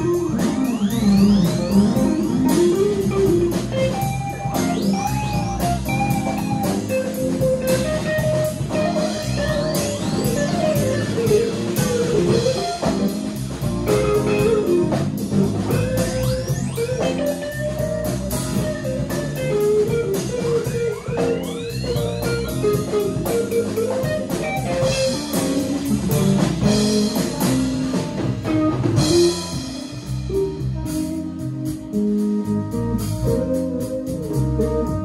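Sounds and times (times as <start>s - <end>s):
drums keeping steady beat: 0.0s - 35.0s
electric guitar: 0.0s - 35.0s
live band playing: 0.0s - 35.0s.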